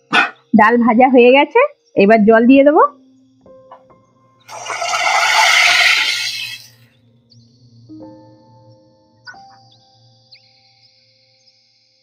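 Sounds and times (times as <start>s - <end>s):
water sizzling in hot oil: 4.5s - 6.8s.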